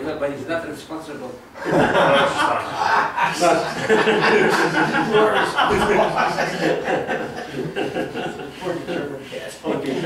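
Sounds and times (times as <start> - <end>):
man laughing: 1.6 - 8.6.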